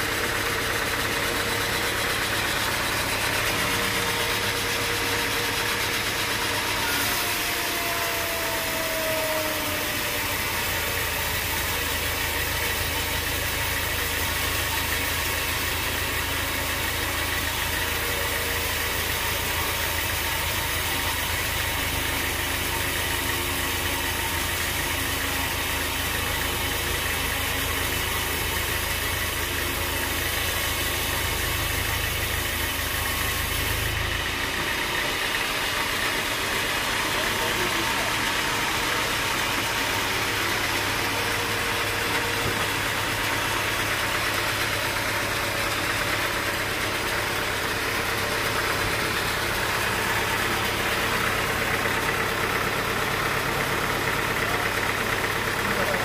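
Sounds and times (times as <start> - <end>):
band saw cutting log: 0.0 - 56.0.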